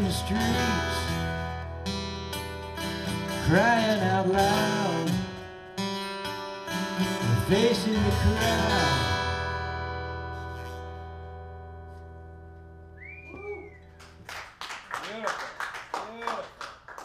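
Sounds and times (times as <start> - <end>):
acoustic guitar chord ringing: 0.0 - 12.9
short whistle: 12.9 - 14.0
people clapping: 13.8 - 17.0.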